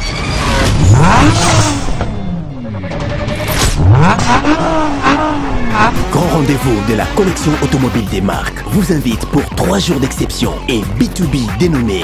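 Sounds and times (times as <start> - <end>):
vehicle engine revving hard: 0.4 - 8.0.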